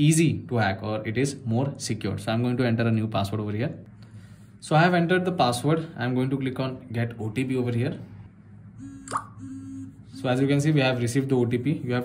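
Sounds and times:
smartphone notification pop: 9.0s - 9.5s.

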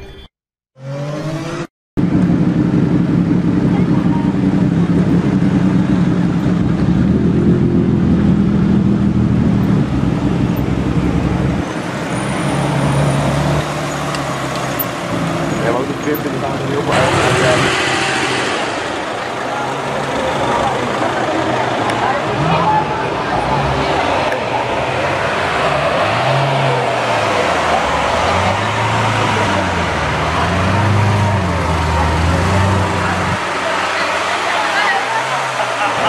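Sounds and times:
deep car engines running: 0.8s - 36.0s.

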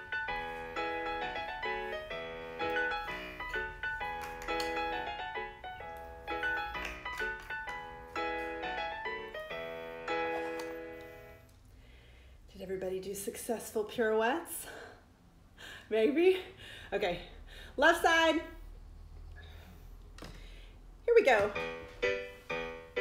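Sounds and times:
solo piano music: 0.0s - 11.4s, 21.5s - 23.0s.

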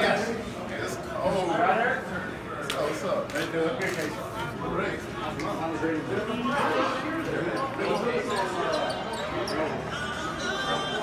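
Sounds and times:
voices echoing in hall: 0.0s - 11.0s.

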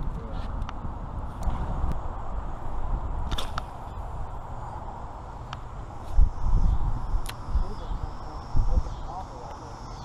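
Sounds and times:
wind: 0.0s - 10.0s
fishing rod swish: 3.3s - 3.8s.

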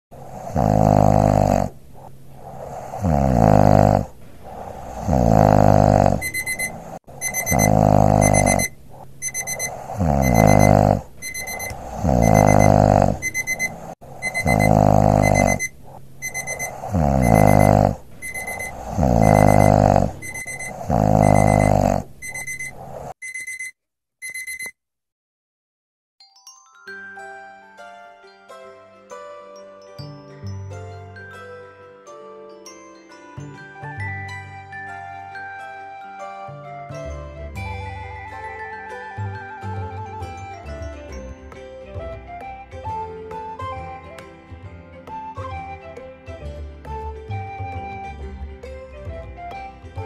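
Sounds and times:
cartoon snoring: 0.2s - 23.2s
alarm clock beeping: 3.0s - 24.7s.

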